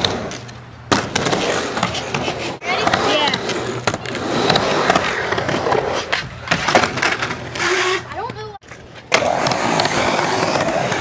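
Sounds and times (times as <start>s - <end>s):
skateboard clack: 0.0s - 11.0s
skateboard wheels rolling on concrete: 0.0s - 11.0s.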